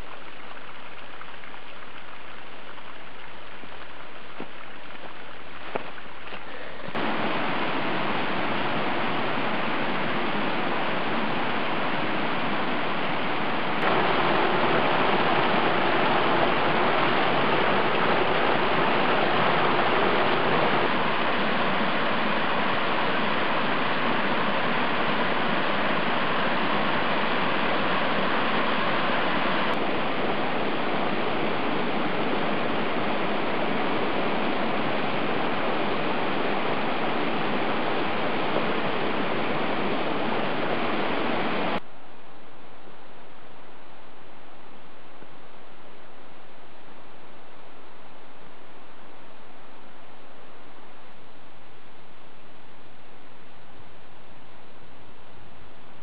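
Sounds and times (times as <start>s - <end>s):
water rushing over rocks: 0.0s - 41.8s.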